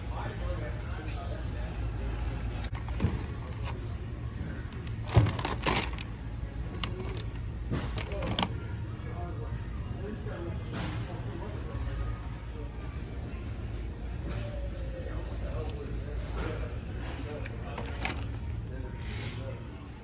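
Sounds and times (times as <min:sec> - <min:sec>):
faint voices: 0:00.0 - 0:20.0
low store background hum: 0:00.0 - 0:20.0
plastic packs clicking and rattling: 0:04.6 - 0:08.6, 0:17.2 - 0:18.5.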